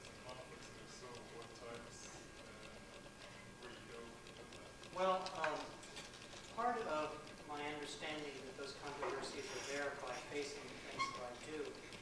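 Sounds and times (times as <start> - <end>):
person talking: 0.0 - 5.8.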